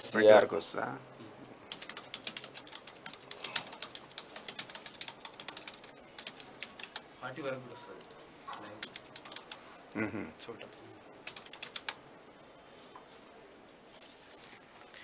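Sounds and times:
keyboard typing clicks: 1.7 - 7.1, 8.0 - 9.6, 10.6 - 12.0
person speaking: 2.1 - 11.9.

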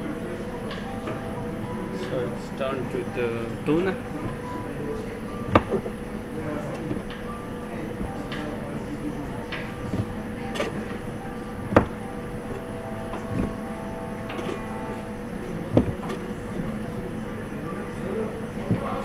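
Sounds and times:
background hum: 0.0 - 19.0
faint music: 0.0 - 19.0
voices: 0.0 - 19.0.

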